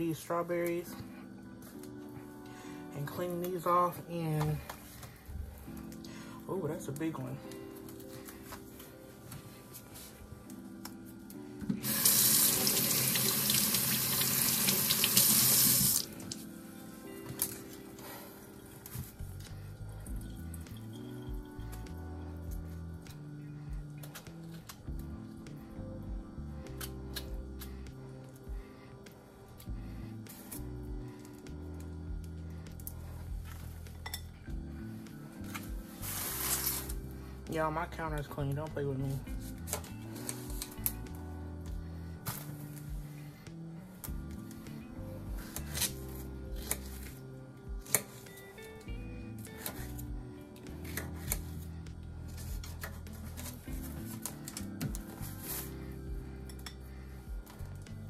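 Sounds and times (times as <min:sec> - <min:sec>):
quiet background music: 0:00.0 - 0:58.0
kitchen tap running: 0:11.8 - 0:16.1.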